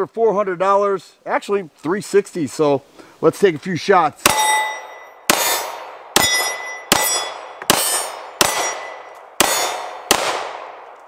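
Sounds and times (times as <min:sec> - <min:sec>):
metal target clanging: 0:04.2 - 0:10.0
pistol shots: 0:04.2 - 0:11.0.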